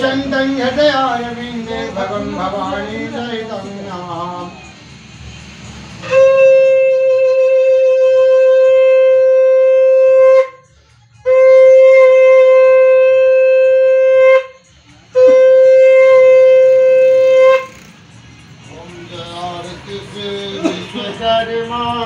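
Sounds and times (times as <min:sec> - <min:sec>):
conch shell blasts: 0:15.2 - 0:17.9.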